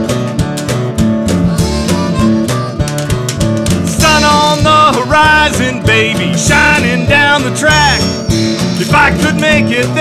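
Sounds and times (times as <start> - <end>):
guitar-led country-blues band: 0.0 - 10.0.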